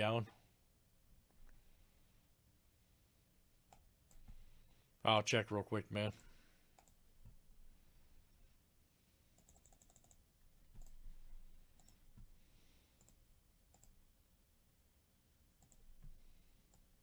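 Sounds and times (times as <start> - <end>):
computer clicks: 6.2 - 7.0, 9.4 - 11.0, 11.7 - 12.1, 13.0 - 14.0, 15.6 - 15.9.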